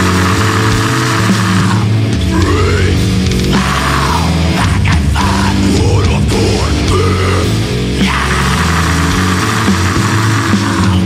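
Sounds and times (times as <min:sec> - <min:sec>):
distorted electric guitars: 0:00.0 - 0:11.0.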